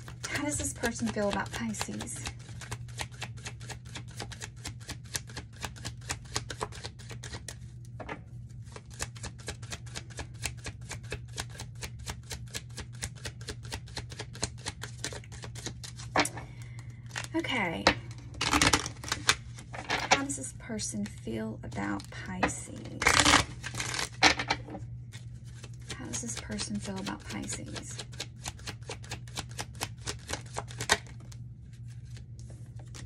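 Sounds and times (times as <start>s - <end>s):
cards being shuffled: 0.0s - 7.7s, 8.5s - 17.4s, 18.1s - 20.4s, 21.8s - 33.0s
card rustle: 21.1s - 33.0s.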